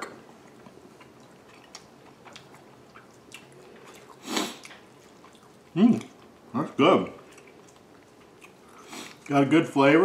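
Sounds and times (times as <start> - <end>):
man chewing: 0.0 - 6.5, 7.2 - 9.3.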